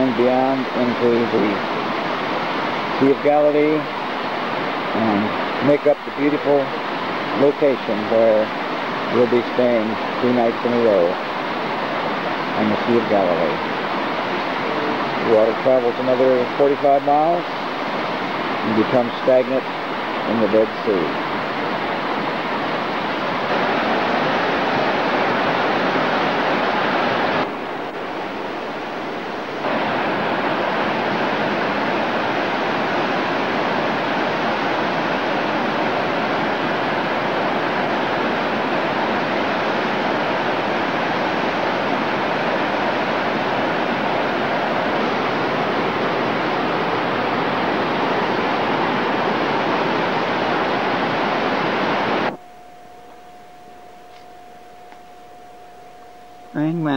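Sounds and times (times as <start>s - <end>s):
stream rushing over rocks: 0.0s - 52.5s.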